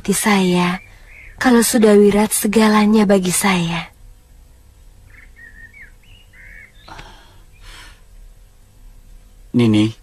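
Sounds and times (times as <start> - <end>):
low steady hum: 0.0 - 10.0
faint bird chirps: 0.1 - 2.4, 5.0 - 8.0.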